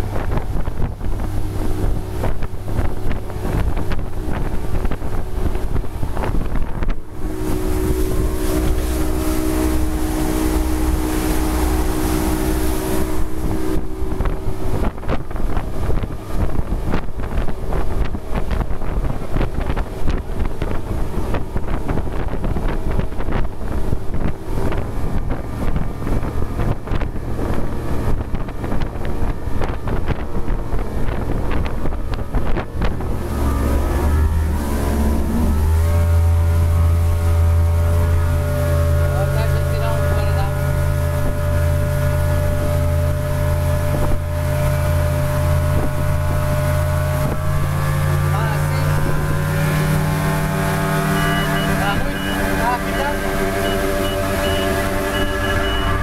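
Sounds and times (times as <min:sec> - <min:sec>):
outboard engine droning: 0:00.0 - 0:56.0
water noise: 0:00.0 - 0:56.0
wind buffeting microphone: 0:00.0 - 0:56.0.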